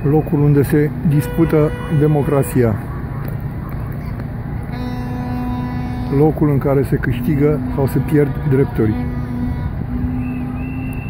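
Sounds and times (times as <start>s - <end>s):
street and crowd noise: 0.0s - 11.0s
horn holding low note: 4.7s - 10.8s.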